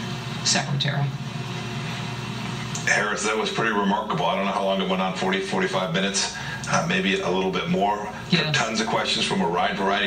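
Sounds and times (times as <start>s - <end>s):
steady low hum: 0.0s - 10.0s
man's voice: 2.8s - 10.0s.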